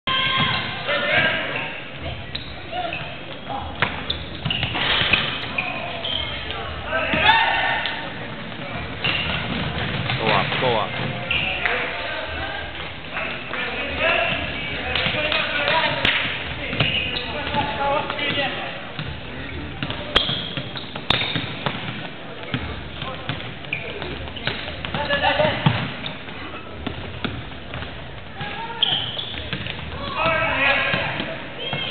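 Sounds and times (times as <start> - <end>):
voices of spectators and players: 0.0 - 31.9
basketball bouncing on court: 2.1 - 5.6, 8.3 - 11.7, 14.2 - 31.9.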